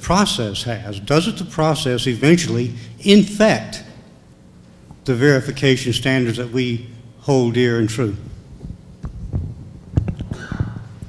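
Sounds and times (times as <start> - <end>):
steady low hum: 0.0 - 11.0
microphone rustle: 8.2 - 11.0
microphone handling thumps: 8.5 - 11.0.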